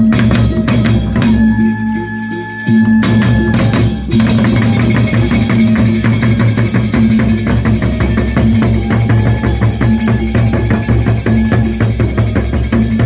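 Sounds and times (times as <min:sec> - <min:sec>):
barrel drums beaten rhythmically: 0:00.0 - 0:13.0
sustained ringing tones: 0:00.0 - 0:13.0.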